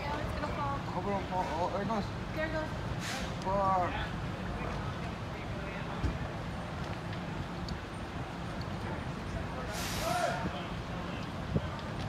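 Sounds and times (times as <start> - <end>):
fire low rumble: 0.0 - 12.0
short hiss: 3.0 - 3.4, 9.7 - 10.4.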